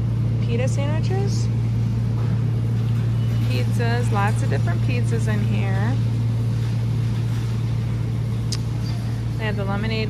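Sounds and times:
freezer hum: 0.0s - 10.0s.

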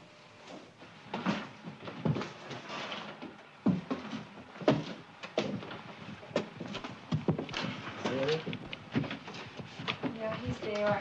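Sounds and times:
high heels climbing stairs: 3.6s - 9.3s.

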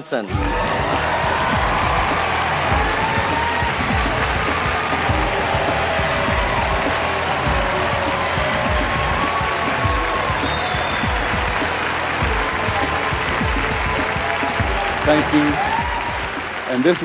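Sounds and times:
audience applauding: 0.3s - 17.0s
music with a steady beat: 0.3s - 17.0s.

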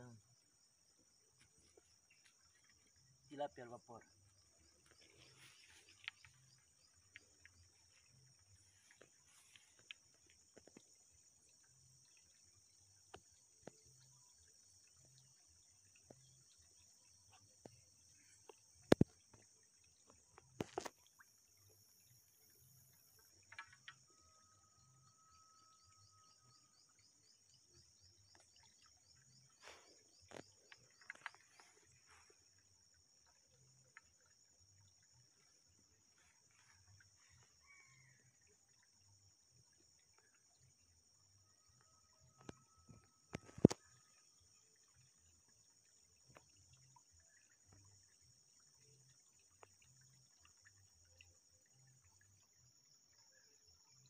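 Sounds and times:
insects droning: 0.0s - 54.0s.

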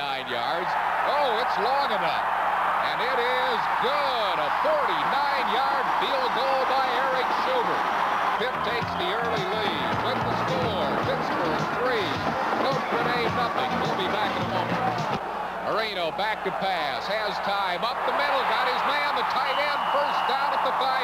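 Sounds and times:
stadium crowd noise: 0.0s - 21.0s
music with stepped bass line: 8.8s - 15.2s.

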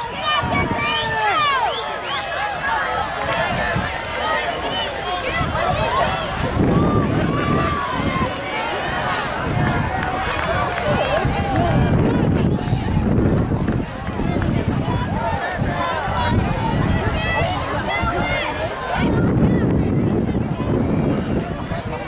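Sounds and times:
runners' footfalls on grass: 0.0s - 21.8s
spectators shouting and cheering: 0.0s - 22.0s.

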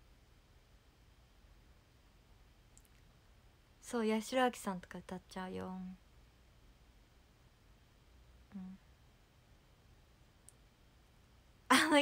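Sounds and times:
woman speaking: 3.8s - 6.0s, 11.7s - 12.0s.

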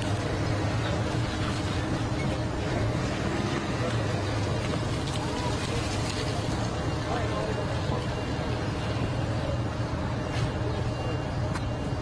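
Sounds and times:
faint voices: 0.0s - 12.0s
vehicle engines rumbling: 0.0s - 12.0s.

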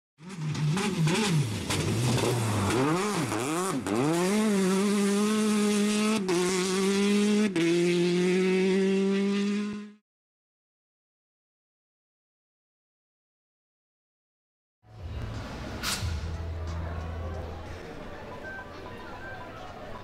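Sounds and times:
race car engine revving: 0.2s - 10.0s.

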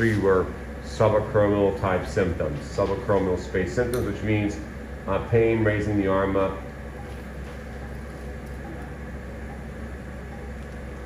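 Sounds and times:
low equipment hum: 0.0s - 11.0s.

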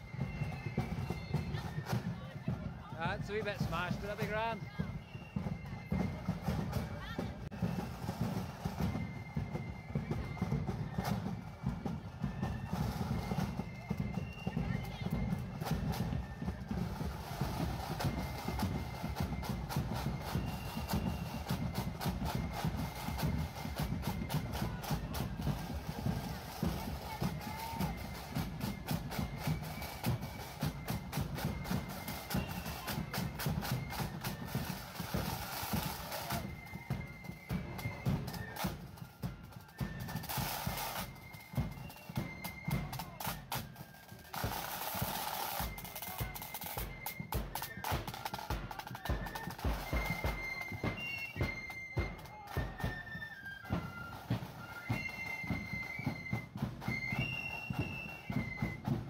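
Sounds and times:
flutes playing a tune: 0.0s - 59.0s
snare drums beating fast: 0.0s - 59.0s.

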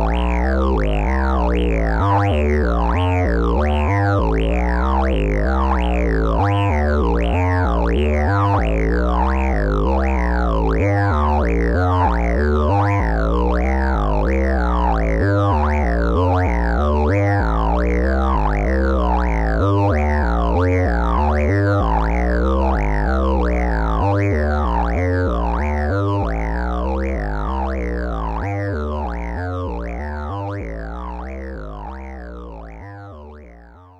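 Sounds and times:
pulsing low bass line: 0.0s - 33.9s
synthesizer notes with filter sweeps: 0.0s - 33.9s.

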